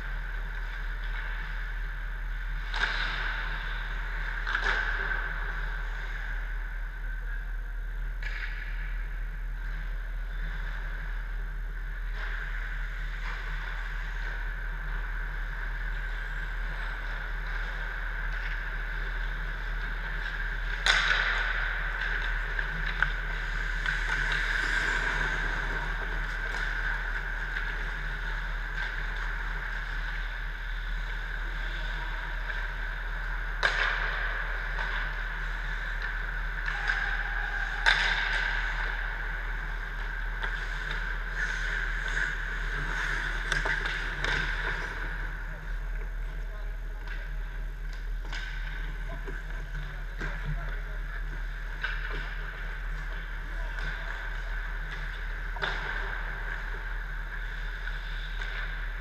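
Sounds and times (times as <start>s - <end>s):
sharp cracks of pucks and sticks: 2.5s - 6.2s, 8.1s - 9.0s, 16.5s - 45.2s
machinery hum: 9.9s - 59.0s
skate scrapes: 20.3s - 45.8s.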